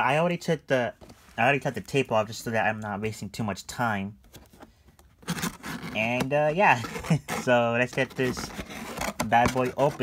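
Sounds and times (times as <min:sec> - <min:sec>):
cardboard scraping on cardboard: 0:05.2 - 0:10.0.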